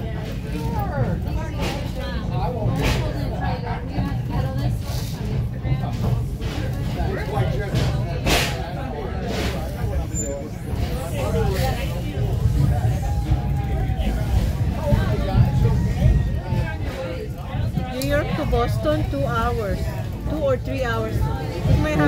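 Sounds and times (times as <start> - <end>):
indistinct passenger chatter: 0.0 - 22.0
train rolling on track rumble: 0.1 - 22.0.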